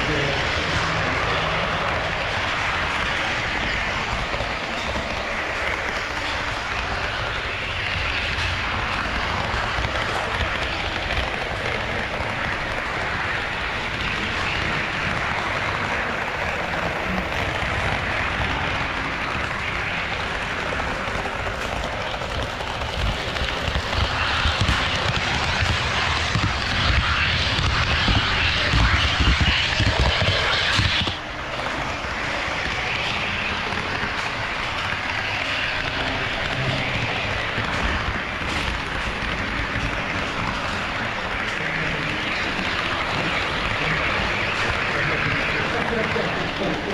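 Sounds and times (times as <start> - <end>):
model train motor whirr: 0.0 - 46.9
model train wheels rumbling on rail: 0.0 - 46.9.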